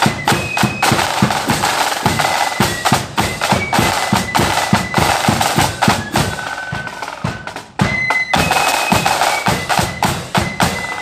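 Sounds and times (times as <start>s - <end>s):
flutes holding high note: 0.0s - 11.0s
side drums and bass drum march: 0.0s - 11.0s.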